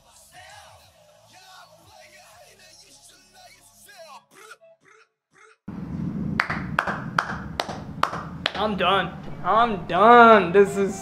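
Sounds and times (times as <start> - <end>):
person clapping hands: 6.4 - 8.8.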